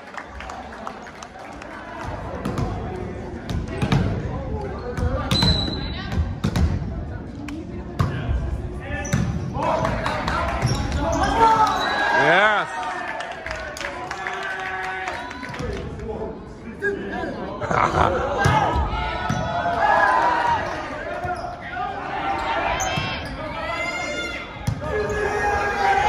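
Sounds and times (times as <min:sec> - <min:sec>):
voices and shouts: 0:09.6 - 0:15.8, 0:16.7 - 0:26.0.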